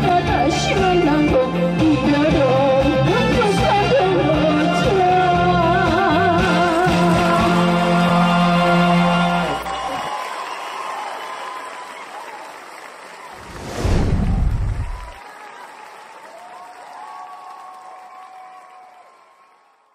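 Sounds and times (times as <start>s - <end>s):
audience applauding: 6.7s - 19.9s
whoosh into low rumble: 13.4s - 15.2s.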